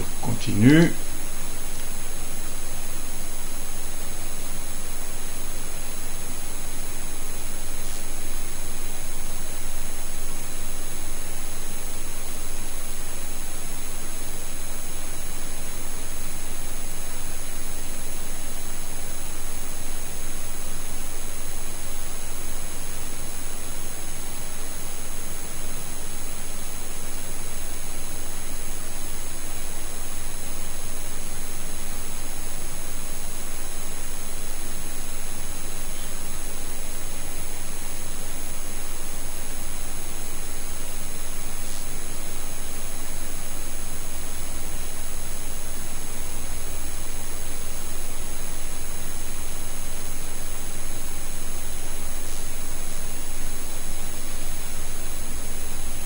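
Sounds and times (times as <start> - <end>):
microphone hiss: 0.0 - 56.0.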